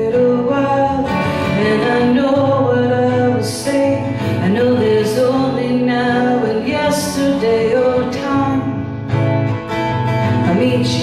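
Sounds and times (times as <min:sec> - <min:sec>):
woman singing into a microphone: 0:00.0 - 0:09.3, 0:10.2 - 0:11.0
strummed acoustic guitar: 0:00.0 - 0:11.0.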